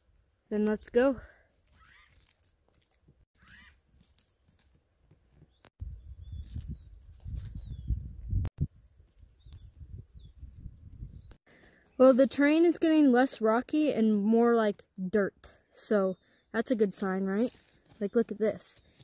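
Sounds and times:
wind rumble on microphone: 0:05.8 - 0:11.4.

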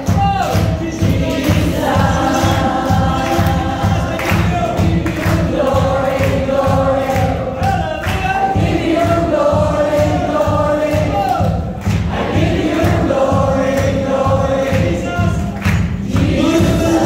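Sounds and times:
band drum beat: 0:00.0 - 0:17.0
group of voices singing: 0:00.3 - 0:17.0.

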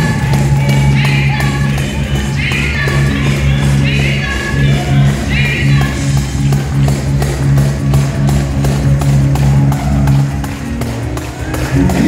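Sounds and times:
low chords: 0:00.0 - 0:12.0
percussive beat: 0:00.0 - 0:12.0.

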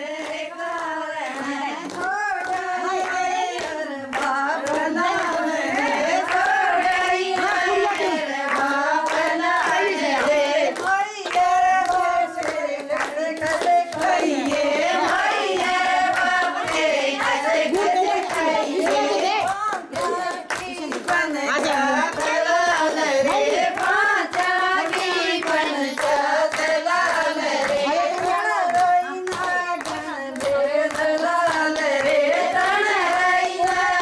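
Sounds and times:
women singing a folk song: 0:00.0 - 0:34.0
hand claps: 0:00.1 - 0:34.0.

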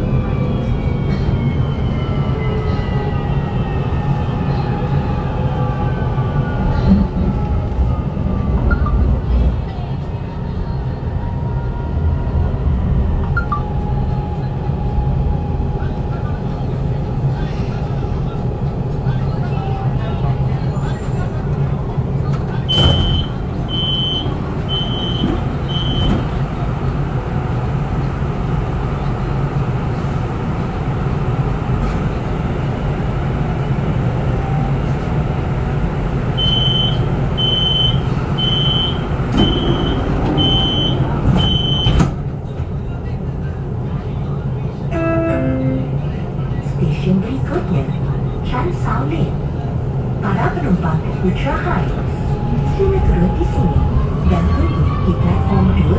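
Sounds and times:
train low rumble: 0:00.0 - 0:55.9.

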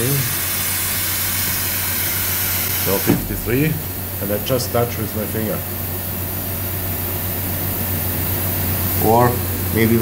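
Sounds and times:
machine hissing: 0:00.0 - 0:10.0
constant low hum: 0:02.8 - 0:10.0.

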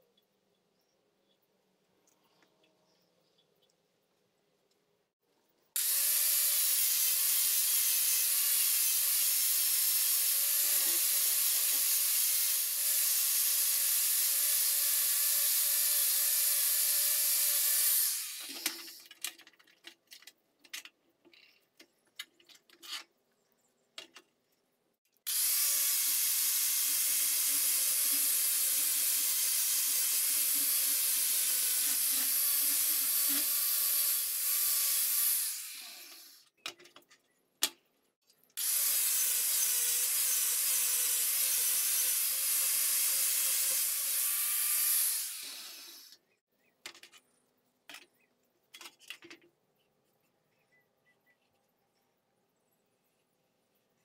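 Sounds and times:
angle grinder grinding steel: 0:05.8 - 0:19.0, 0:38.6 - 0:46.2.

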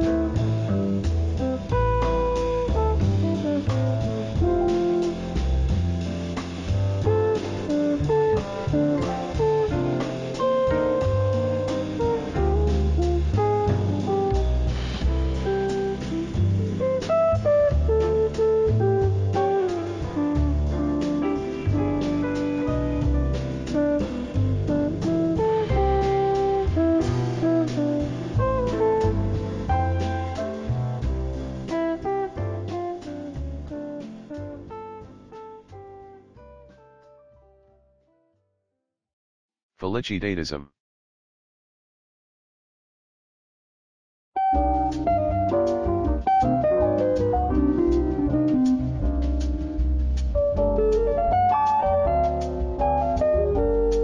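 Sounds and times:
bass line: 0:00.0 - 0:34.7, 0:39.8 - 0:40.7, 0:44.6 - 0:54.0
plucked jazz guitar notes: 0:00.0 - 0:35.2, 0:44.4 - 0:54.0.

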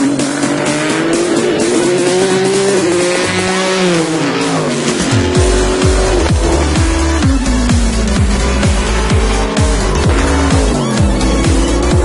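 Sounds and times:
electronic music: 0:00.0 - 0:12.0
race car engine accelerating: 0:00.0 - 0:12.0.

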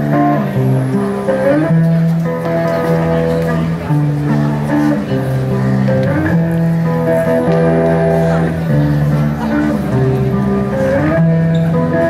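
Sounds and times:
live band with guitars: 0:00.0 - 0:12.0.

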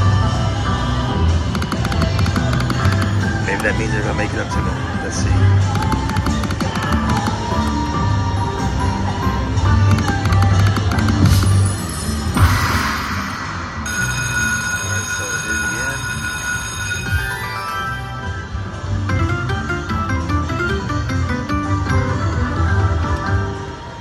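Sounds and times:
electronic game music: 0:01.1 - 0:08.7, 0:09.5 - 0:23.5
chiming tones: 0:11.5 - 0:18.5.

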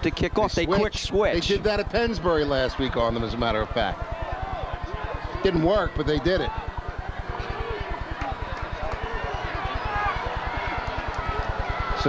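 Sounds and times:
low buzz: 0:00.0 - 0:12.0
stadium crowd chatter: 0:00.0 - 0:12.0.

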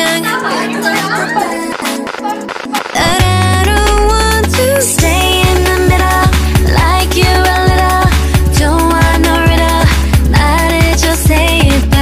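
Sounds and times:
woman singing: 0:00.0 - 0:12.0
deep steady bass: 0:03.0 - 0:12.0.

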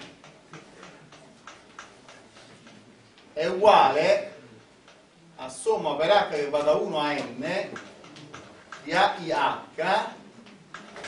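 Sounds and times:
taps and strokes of writing on board: 0:00.0 - 0:02.8.

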